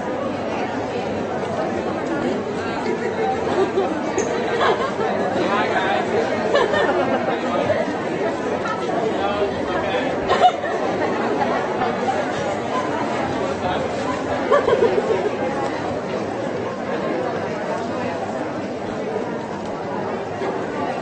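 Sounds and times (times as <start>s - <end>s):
chatter of many voices: 0.0s - 21.0s.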